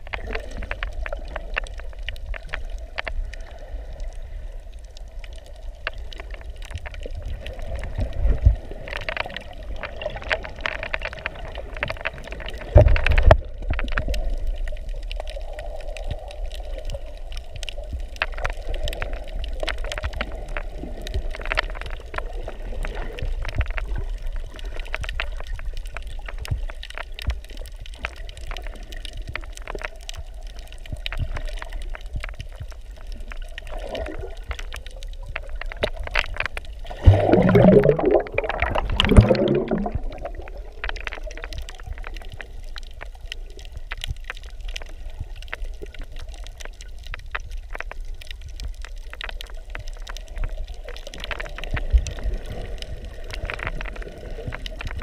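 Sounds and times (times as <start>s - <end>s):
sharp underwater clicks and crackles: 0.0s - 55.0s.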